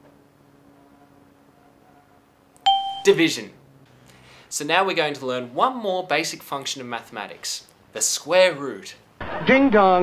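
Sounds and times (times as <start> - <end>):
bright bell-like ding: 2.7 - 3.2.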